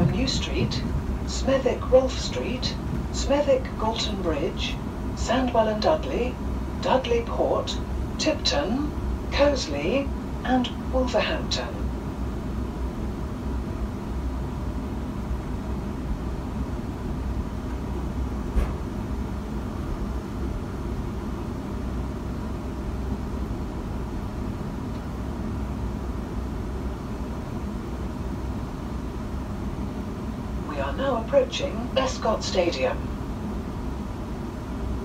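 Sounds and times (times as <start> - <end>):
train carriage rumble: 0.0 - 35.0.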